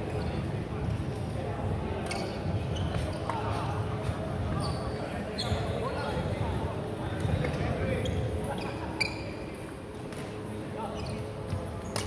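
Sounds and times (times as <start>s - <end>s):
echoing voices in large hall: 0.0s - 12.0s
sneakers squeaking on wooden floor: 2.1s - 3.4s, 4.5s - 6.0s, 8.0s - 9.4s, 10.9s - 12.0s.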